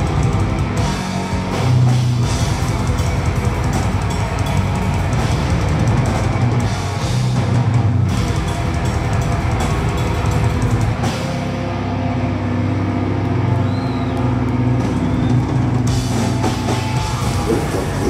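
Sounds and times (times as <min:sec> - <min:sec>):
death metal band playing live: 0:00.0 - 0:18.0.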